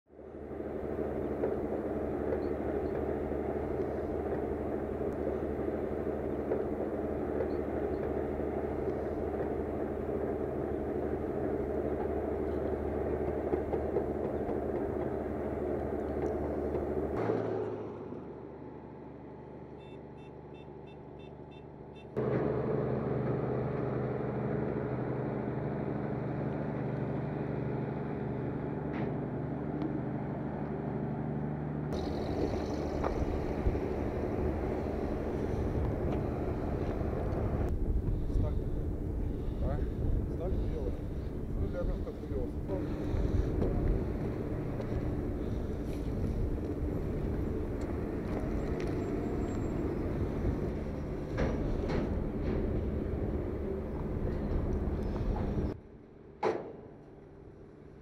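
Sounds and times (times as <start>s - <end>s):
diesel locomotive hum: 0.1s - 58.0s.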